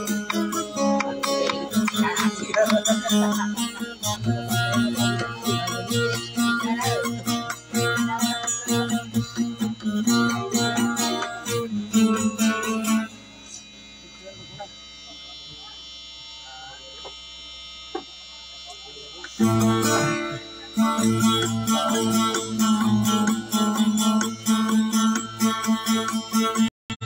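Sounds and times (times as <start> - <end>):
plucked string instrument: 0.0 - 13.1, 19.3 - 26.7.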